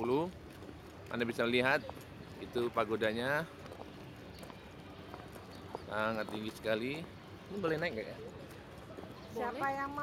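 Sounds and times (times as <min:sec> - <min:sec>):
footsteps on dirt path: 0:03.3 - 0:07.8.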